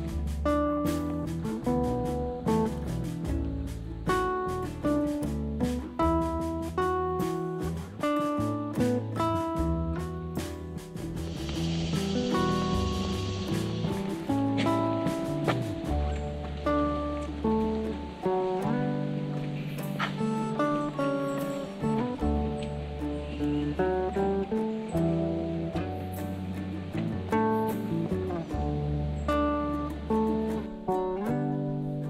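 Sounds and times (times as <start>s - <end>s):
plucked guitar melody: 0.0s - 32.0s
sustained bass notes: 0.0s - 32.0s.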